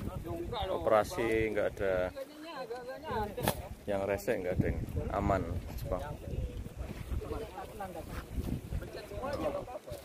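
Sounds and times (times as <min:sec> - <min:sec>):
wind rumble on microphone: 0:00.0 - 0:02.1, 0:03.2 - 0:10.0
people talking indistinctly: 0:00.0 - 0:10.0.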